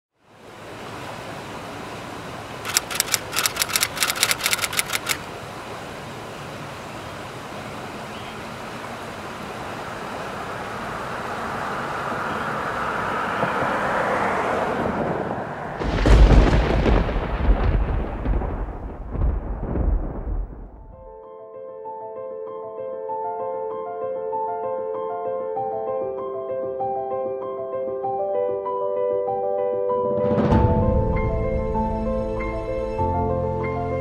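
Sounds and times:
rain-like hiss: 4.4 - 12.7
low rumble of thunder: 15.8 - 21.1.

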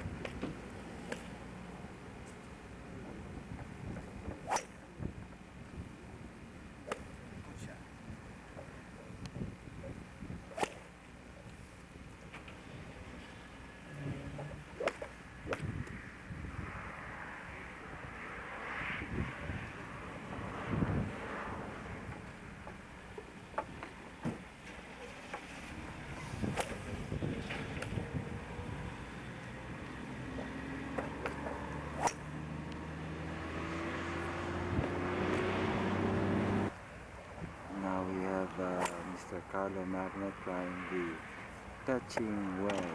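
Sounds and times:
outdoor ambience: 0.0 - 42.9
engine hum rising in pitch: 12.9 - 22.5, 25.2 - 36.7.

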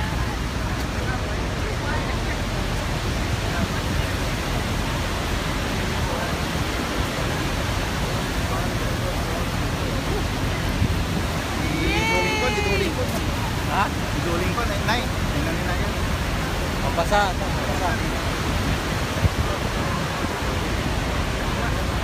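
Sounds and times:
waterfall roaring: 0.0 - 22.0
wind: 0.0 - 22.0.

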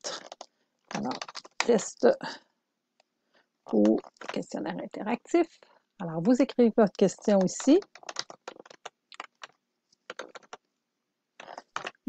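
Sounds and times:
typing on computer keyboard: 0.2 - 1.8, 7.0 - 10.6, 11.4 - 12.0.

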